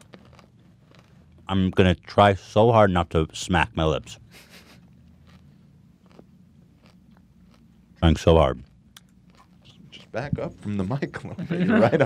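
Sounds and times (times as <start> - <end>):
chewing and crunching candy: 0.0 - 1.5, 4.8 - 10.2.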